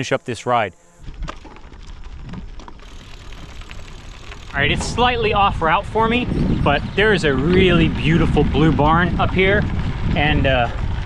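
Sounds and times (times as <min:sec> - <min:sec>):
bicycle tyres on gravel: 0:00.0 - 0:11.0
low rumble: 0:01.0 - 0:11.0.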